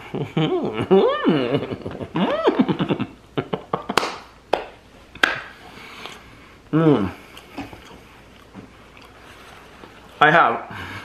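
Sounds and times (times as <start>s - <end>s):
man making muffled mmm sounds: 6.7s - 7.4s
chewing: 7.2s - 9.4s.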